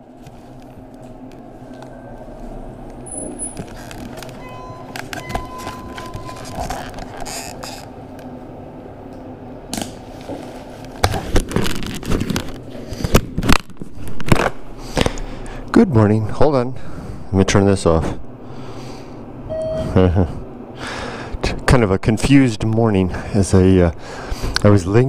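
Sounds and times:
lift hum: 0.0 - 22.1
thin tone: 4.4 - 6.9, 19.5 - 20.0.

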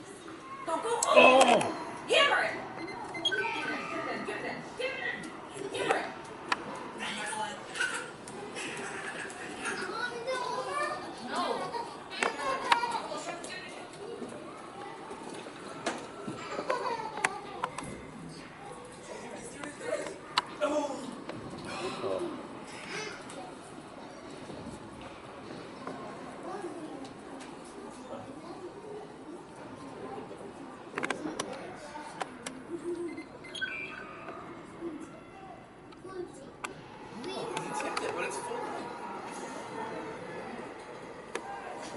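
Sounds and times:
spectators' voices: 0.0 - 41.9.

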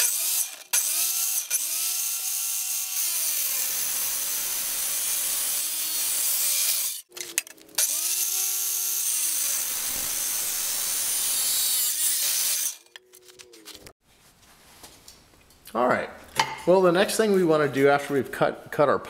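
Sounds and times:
miter saw cutting steel: 0.0 - 13.0.

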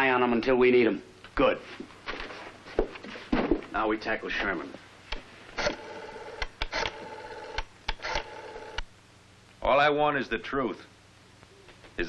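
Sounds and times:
rotary dial clicks: 5.6 - 8.8
telephone line tone: 5.6 - 8.8.

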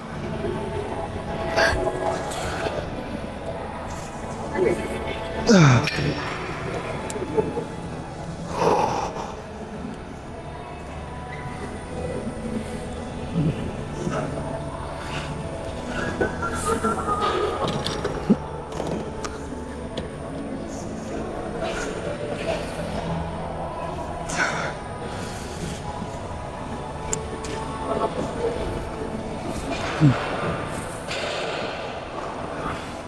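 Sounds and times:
faint music: 0.0 - 33.0
indistinct voices: 0.0 - 33.0.

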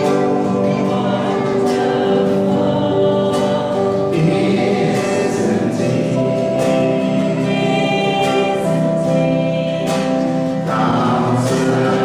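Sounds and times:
choir singing a hymn: 0.0 - 12.0
instrumental accompaniment: 0.0 - 12.0.

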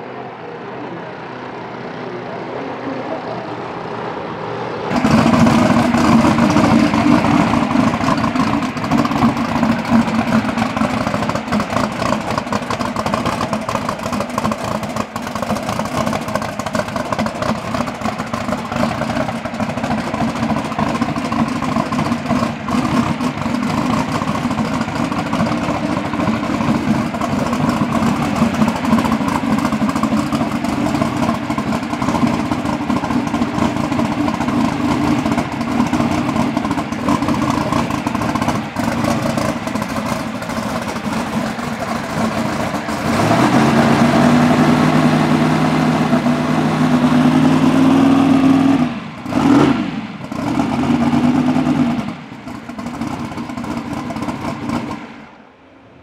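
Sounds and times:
race car engine running: 0.0 - 55.5.

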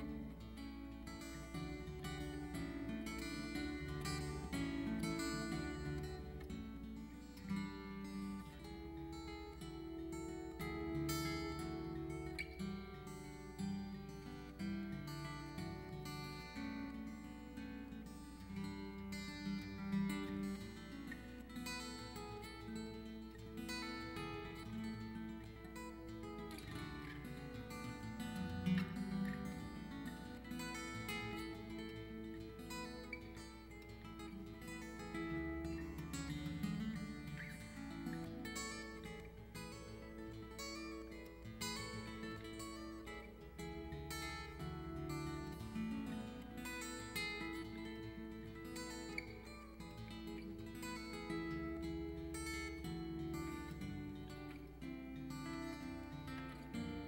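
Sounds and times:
fingerstyle acoustic guitar: 0.0 - 57.0.

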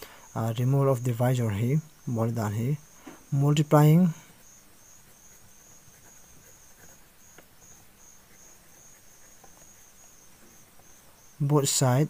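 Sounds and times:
insect chirping: 0.0 - 12.0
pen writing on paper: 4.8 - 11.0.

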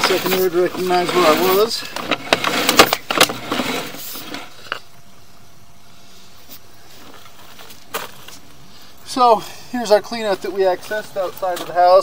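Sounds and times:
cable rattling and scraping in pipe: 0.0 - 4.9
faint steady hiss: 0.0 - 12.0.

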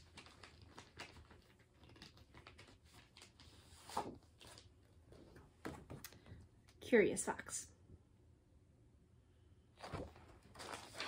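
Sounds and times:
plastic and paper rustling: 0.0 - 6.0, 9.8 - 11.0.

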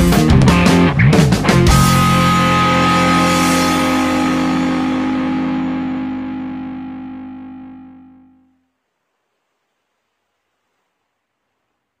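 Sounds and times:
distorted electric guitar chord: 0.0 - 8.6.

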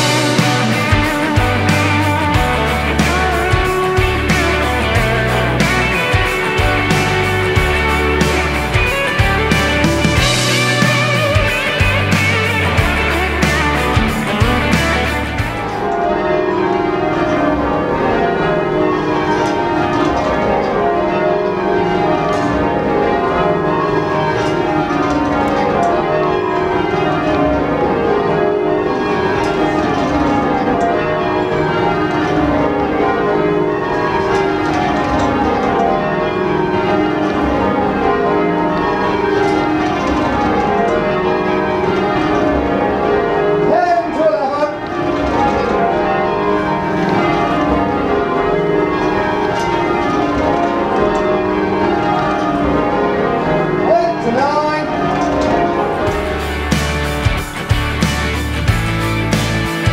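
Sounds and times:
church bells change-ringing: 0.0 - 59.9.

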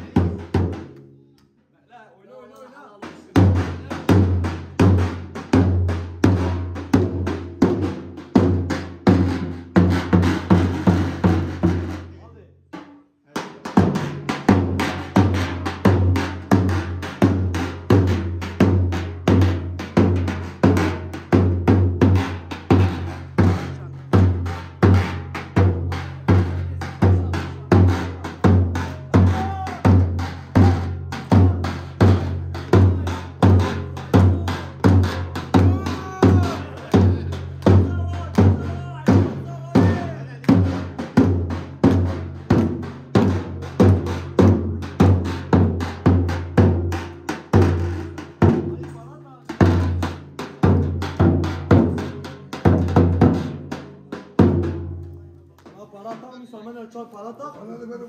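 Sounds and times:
bass drum beating dance rhythm: 13.7 - 54.9.

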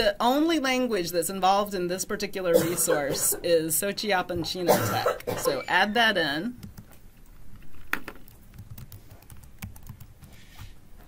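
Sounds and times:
typing on computer keyboard: 6.6 - 7.0, 8.2 - 10.4.

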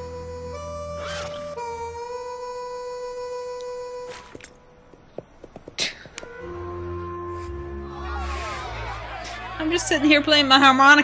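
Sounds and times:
harmonica holding a note: 0.0 - 4.4, 6.2 - 8.3.

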